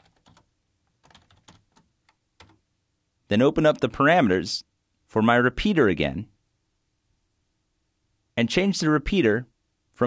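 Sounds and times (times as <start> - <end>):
computer keyboard typing: 0.0 - 2.6.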